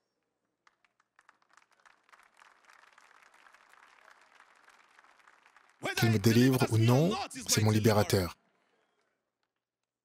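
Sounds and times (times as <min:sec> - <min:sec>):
congregation applauding: 0:00.6 - 0:09.3.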